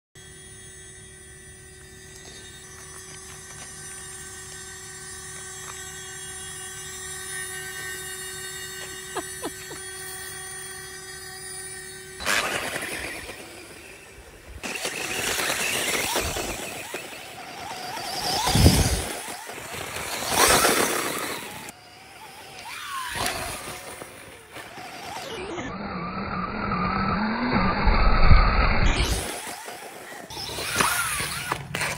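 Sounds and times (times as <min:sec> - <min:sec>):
electric motor whine: 0:00.2 - 0:31.9
steady drone of held tones: 0:00.2 - 0:31.9
tyres on loose dirt: 0:12.2 - 0:28.0, 0:29.0 - 0:31.9.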